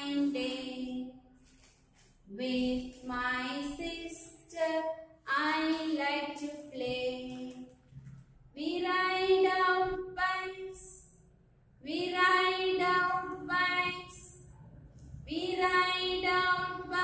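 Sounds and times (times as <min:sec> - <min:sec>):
woman singing unaccompanied: 0:11.9 - 0:14.3, 0:15.3 - 0:17.0.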